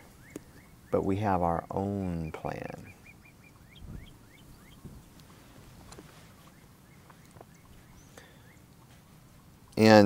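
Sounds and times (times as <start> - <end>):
bird singing whistled notes: 0.0 - 1.1, 2.2 - 4.9, 6.4 - 8.7.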